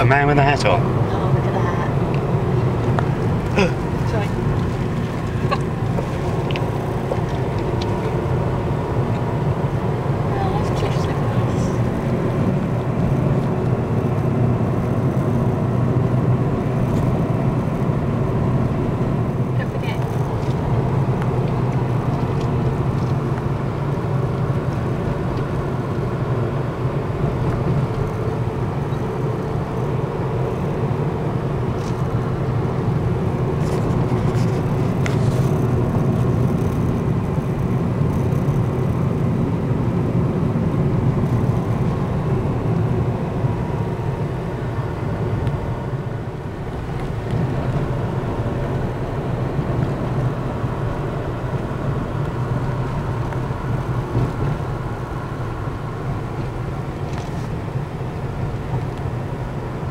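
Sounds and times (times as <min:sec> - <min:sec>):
car engine and tyre drone: 0:00.0 - 0:59.9.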